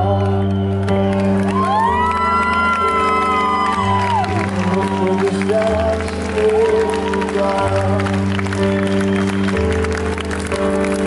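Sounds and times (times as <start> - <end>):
upright piano chords: 0.0 - 11.0
crowd cheering: 0.6 - 11.0.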